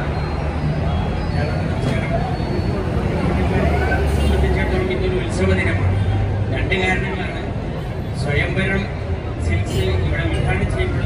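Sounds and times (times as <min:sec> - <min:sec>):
bus engine rumbling: 0:00.0 - 0:11.0
crowd chatter: 0:00.0 - 0:11.0.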